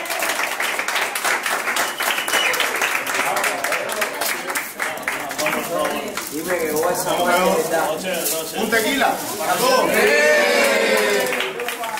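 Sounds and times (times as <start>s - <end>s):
people talking and calling out: 2.1s - 11.9s.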